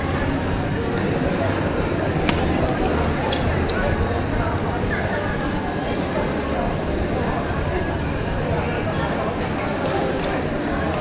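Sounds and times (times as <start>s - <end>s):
chatter of many people: 0.0s - 11.0s
racket hitting shuttlecock: 2.2s - 2.5s.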